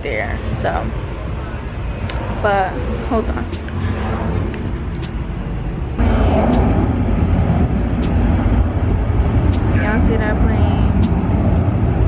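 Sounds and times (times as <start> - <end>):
airplane engines rumbling: 0.0 - 12.0.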